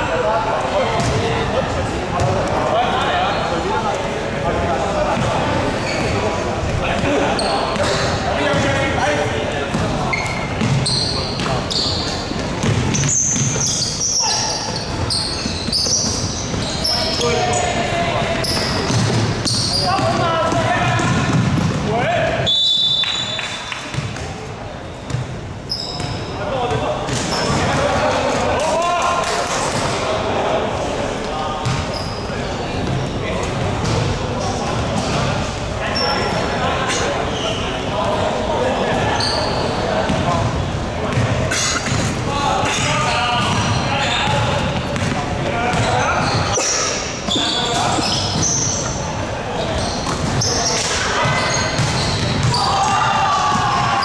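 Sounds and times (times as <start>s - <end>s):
sneakers squeaking on floor: 0.9s - 1.4s, 5.1s - 28.0s, 31.6s - 54.0s
basketball bouncing: 10.6s - 10.8s, 18.5s - 21.8s, 23.9s - 24.3s, 25.1s - 25.3s, 43.4s - 46.4s, 51.2s - 52.6s
referee's whistle: 22.4s - 23.6s
players calling out: 25.0s - 54.0s.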